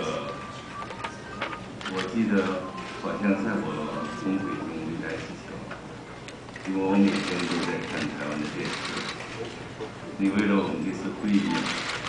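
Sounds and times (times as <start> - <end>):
man speaking into a microphone: 1.9 - 5.8, 6.6 - 9.2, 10.2 - 11.9.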